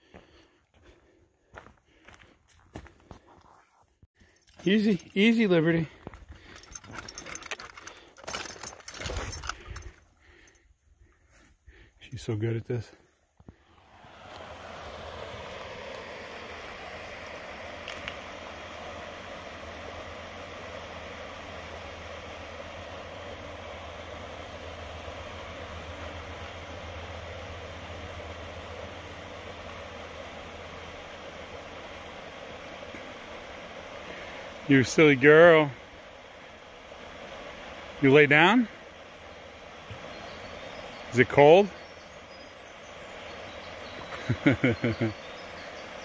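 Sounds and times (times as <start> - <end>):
footsteps on log bridge: 0.0 - 4.3
hiking gear jingling: 4.2 - 10.7
river flowing over stones: 13.7 - 44.2.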